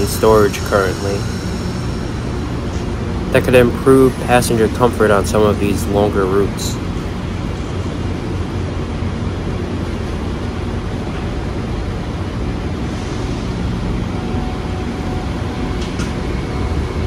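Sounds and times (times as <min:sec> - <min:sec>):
train coaches humming: 0:00.0 - 0:17.0.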